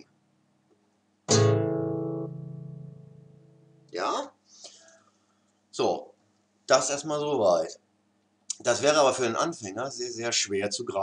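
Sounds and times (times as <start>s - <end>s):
guitar chord ringing: 1.3s - 4.0s.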